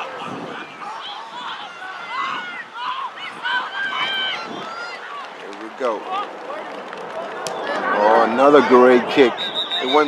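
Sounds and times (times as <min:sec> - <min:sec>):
distant voices shouting: 0:00.0 - 0:10.0.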